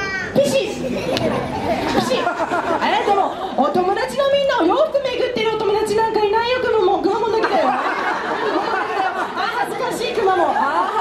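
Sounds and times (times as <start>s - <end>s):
young children calling and chattering: 0.0s - 11.0s.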